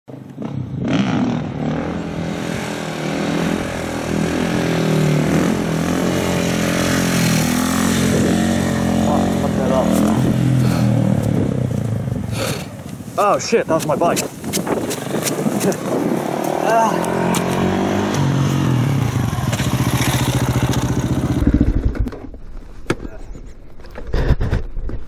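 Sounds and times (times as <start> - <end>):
motorcycle engine revving: 0.1 - 13.0, 14.7 - 22.4.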